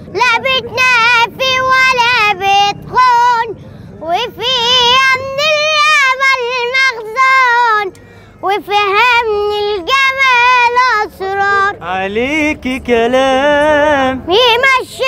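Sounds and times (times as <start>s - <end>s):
boy singing solo: 0.0s - 15.0s.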